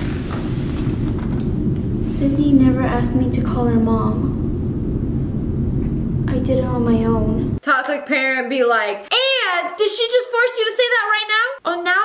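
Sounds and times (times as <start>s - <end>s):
low rumble or hum: 0.0s - 7.6s.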